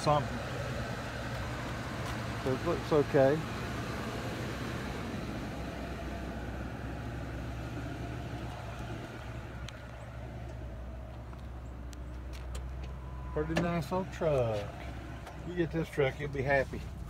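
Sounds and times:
truck engine idling: 0.0s - 17.0s.

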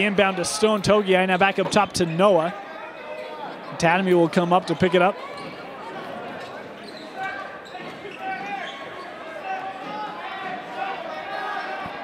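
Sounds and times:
crowd voices: 0.0s - 12.0s.

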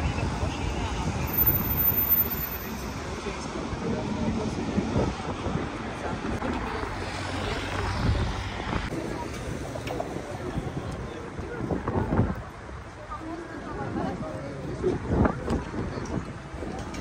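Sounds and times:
city traffic hum: 0.0s - 17.0s
people talking: 0.0s - 17.0s.

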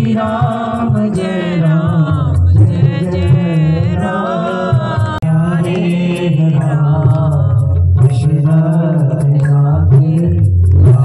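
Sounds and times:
devotional singing over loudspeaker: 0.0s - 11.0s
low instrumental accompaniment: 0.0s - 11.0s
ticking beat: 0.0s - 11.0s.

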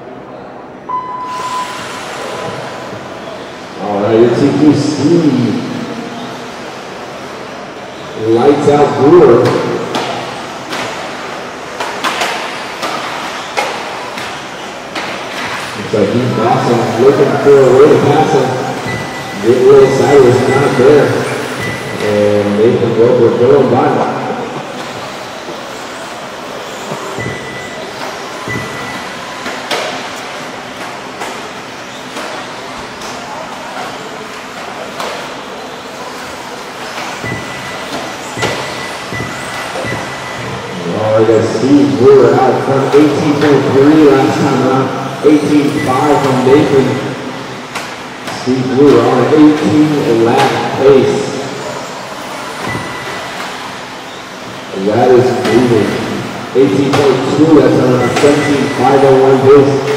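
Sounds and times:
rc car motors humming: 23.4s - 42.0s
sharp knocks: 37.2s - 40.7s.

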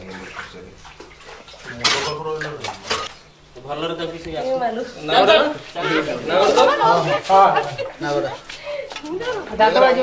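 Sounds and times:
water splashing in a well: 0.0s - 3.3s.

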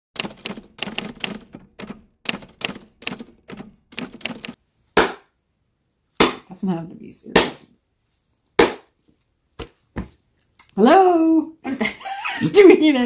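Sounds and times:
typewriter keys clacking: 0.2s - 4.6s.

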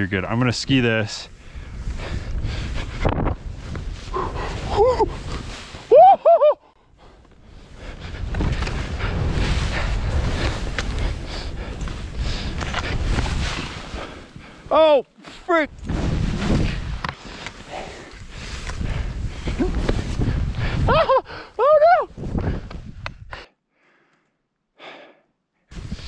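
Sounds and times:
wind rushing over microphone: 0.0s - 6.0s, 7.4s - 14.7s, 15.7s - 23.4s, 25.7s - 26.0s.

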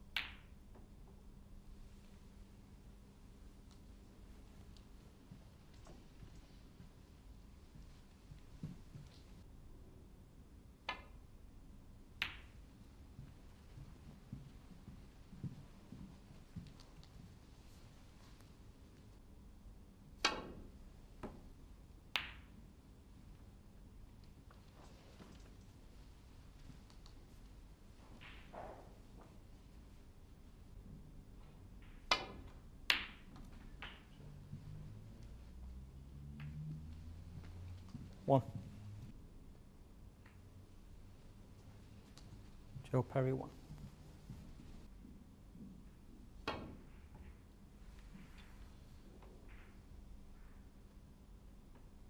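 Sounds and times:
snooker balls clacking: 31.8s - 34.4s
cue striking ball: 32.0s - 34.2s.

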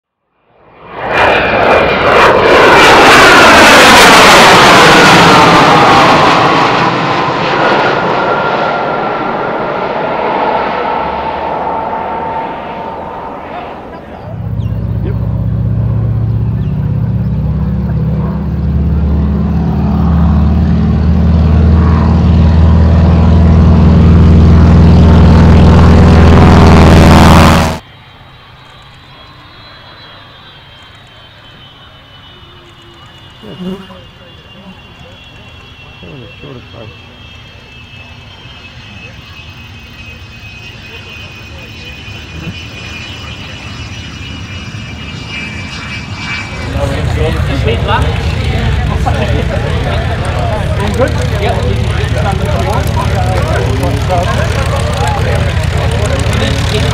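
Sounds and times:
propeller plane engine drone: 0.2s - 56.9s
jet passing overhead: 0.4s - 56.9s
thin high jet whine: 0.4s - 56.9s.

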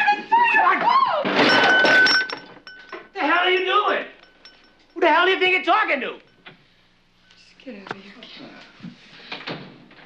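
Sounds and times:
glass breaking crash: 1.3s - 4.6s
ringing tone: 1.4s - 5.1s.

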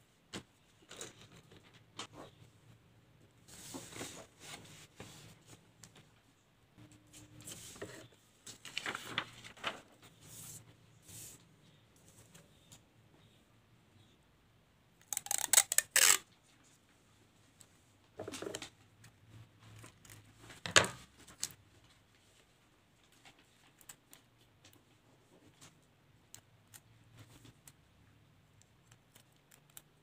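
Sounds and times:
paper rustling on a table: 7.4s - 11.4s.

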